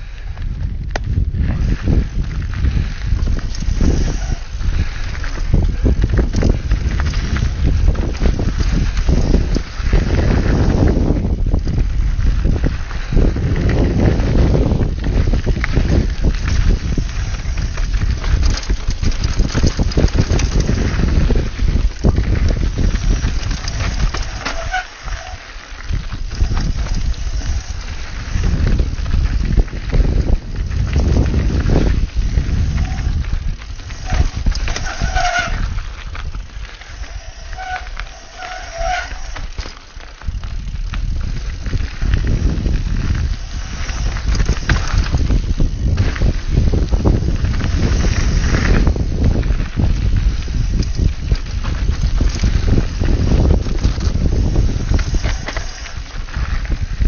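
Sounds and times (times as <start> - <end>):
bike rattling and knocking: 0.0 - 57.0
bike tyre noise: 0.0 - 57.0
wind buffeting microphone: 0.0 - 57.0.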